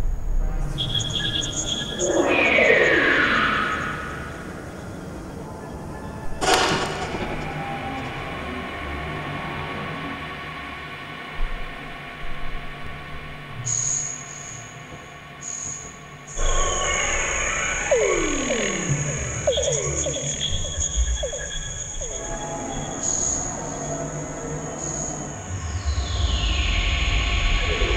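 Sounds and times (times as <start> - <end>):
hazy electronic drone: 0.0 - 27.9
steady high whine: 0.0 - 27.9.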